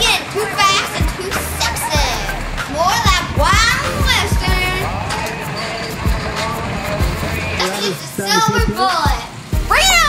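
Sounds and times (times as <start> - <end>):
music with steady drum beat: 0.9 - 5.2, 5.9 - 7.4, 8.2 - 9.8.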